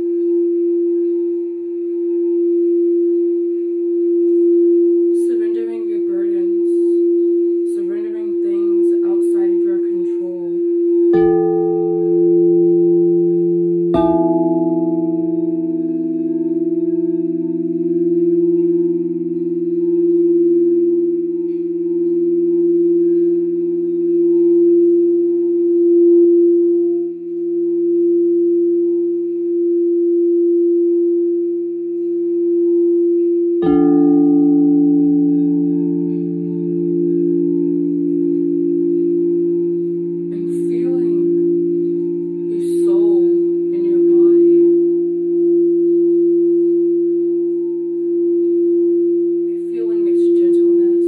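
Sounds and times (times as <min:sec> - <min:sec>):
crystal singing bowls ringing: 0:00.0 - 0:51.0.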